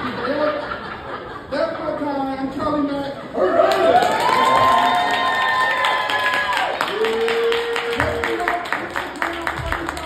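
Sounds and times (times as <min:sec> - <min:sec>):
audience cheering: 0:03.4 - 0:10.0
long held whoop: 0:03.5 - 0:08.2
audience clapping: 0:03.6 - 0:10.0.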